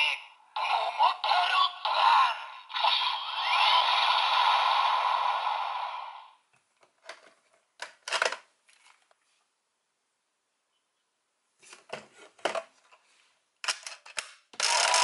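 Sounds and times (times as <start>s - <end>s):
toy speaker sound effects: 0.0s - 6.3s
plastic toy clicks: 13.6s - 15.0s.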